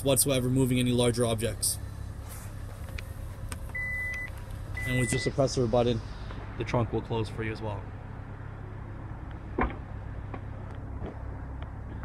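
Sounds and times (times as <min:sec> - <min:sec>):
high warning beeps: 0:03.7 - 0:05.6.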